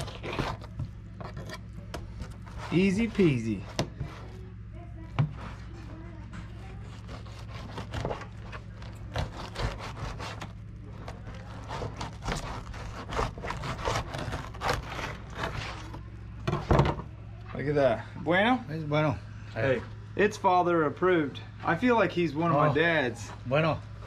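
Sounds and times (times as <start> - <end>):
knife scraping fish skin: 0.0 - 3.1, 6.9 - 10.6, 11.3 - 16.0
steady low hum: 0.0 - 24.0.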